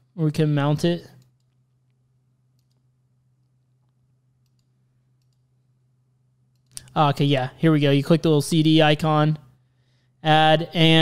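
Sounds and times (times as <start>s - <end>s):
low steady hum: 0.0s - 11.0s
computer mouse clicks: 1.1s - 1.6s, 2.5s - 5.5s, 6.5s - 7.0s.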